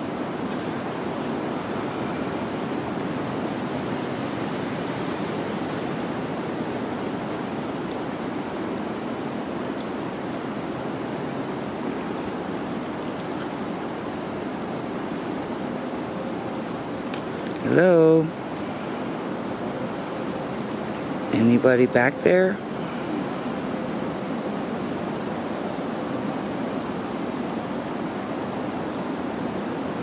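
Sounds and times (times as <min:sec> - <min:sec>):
steady outdoor rushing noise: 0:00.0 - 0:30.0.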